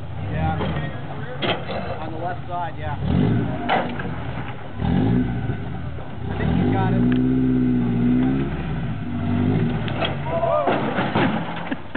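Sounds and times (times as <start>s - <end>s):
buggy engine revving: 0.0s - 11.9s.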